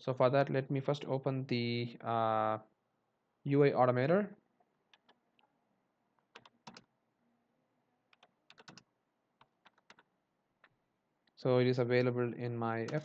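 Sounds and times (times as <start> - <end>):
computer keyboard keystrokes: 6.3 - 6.9, 8.1 - 10.1.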